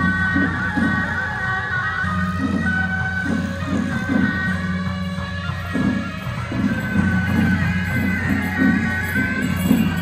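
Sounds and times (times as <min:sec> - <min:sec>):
shawm band playing: 0:00.0 - 0:10.0.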